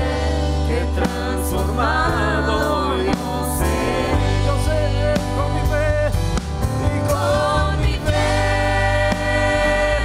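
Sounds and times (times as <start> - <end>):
electric bass: 0.0 - 10.0
man singing into a microphone: 0.8 - 7.4.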